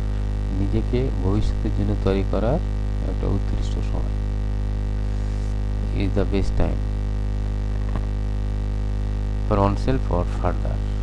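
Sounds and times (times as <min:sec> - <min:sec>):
low mains hum: 0:00.0 - 0:11.0.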